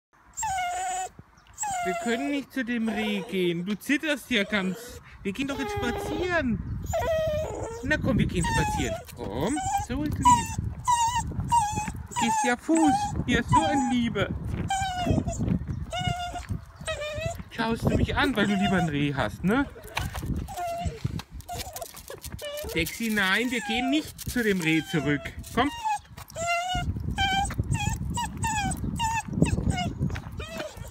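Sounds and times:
dog whining: 0.3s - 3.6s, 4.3s - 30.9s.

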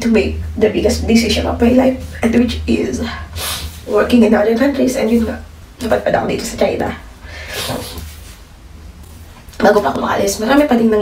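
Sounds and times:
steady low hum: 0.0s - 11.0s
breathy sniff: 3.2s - 3.8s, 7.2s - 8.4s.

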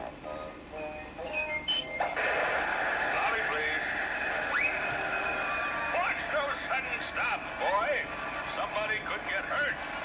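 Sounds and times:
rising whistle: 4.5s - 5.4s.

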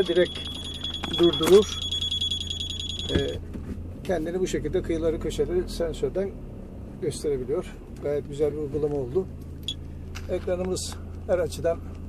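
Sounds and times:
parking sensor warning tone: 0.0s - 3.5s
idling engine hum: 0.0s - 12.0s.

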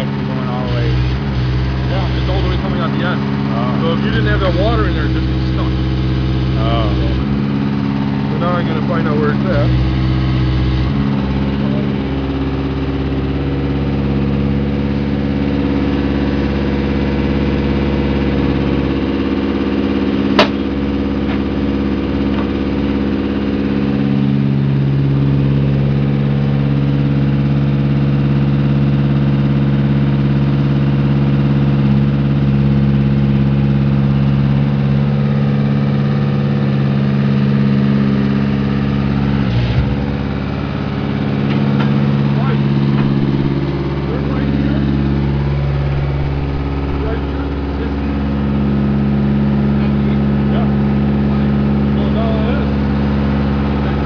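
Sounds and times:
drill rig engine running: 0.0s - 54.0s.

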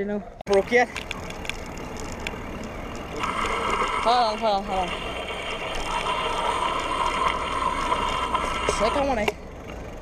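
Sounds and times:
bicycle rolling on pavement: 0.6s - 10.0s.

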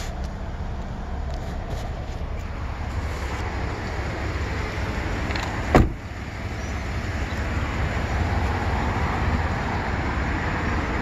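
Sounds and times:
steady low rumble: 0.0s - 11.0s
truck door thud: 5.3s - 6.1s.

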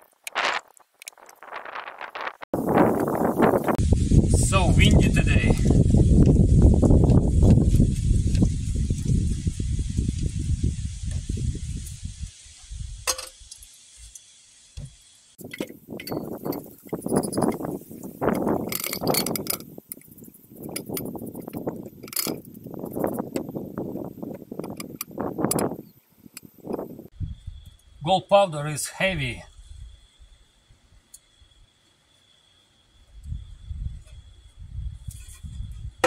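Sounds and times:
wind buffeting microphone: 0.3s - 13.1s, 15.4s - 28.0s, 33.1s - 36.0s.

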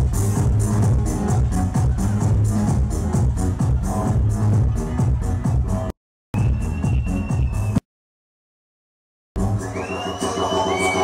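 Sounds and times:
electronic dance music: 0.0s - 7.8s, 9.4s - 11.0s
crowd cheering: 9.5s - 11.0s.

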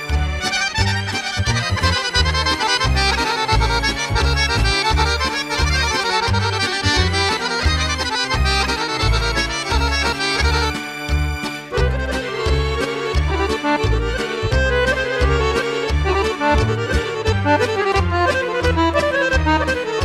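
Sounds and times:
accordion dance tune: 0.0s - 20.0s.

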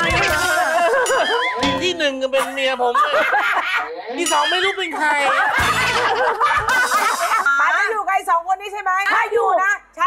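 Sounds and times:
women laughing: 0.0s - 1.7s, 2.4s - 7.8s
women talking: 7.4s - 10.0s.

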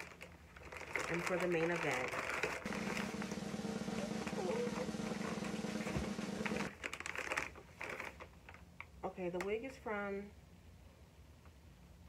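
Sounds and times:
plastic packaging rustling: 0.0s - 8.8s.

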